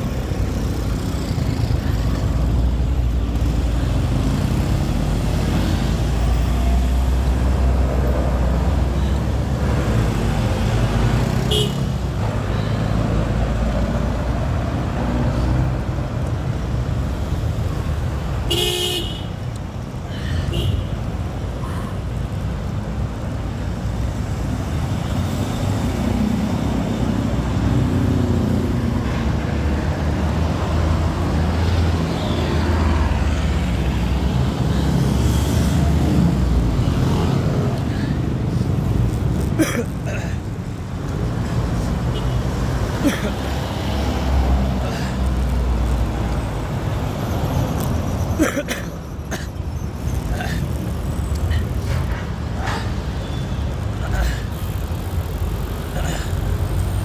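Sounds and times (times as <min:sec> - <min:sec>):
motor vehicles rumbling: 0:00.0 - 0:57.0
vehicle horn honk: 0:11.5 - 0:11.8, 0:18.5 - 0:19.3.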